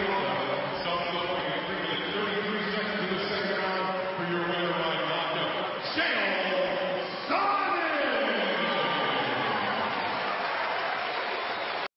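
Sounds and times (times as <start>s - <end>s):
announcer calling over public address: 0.0s - 9.7s.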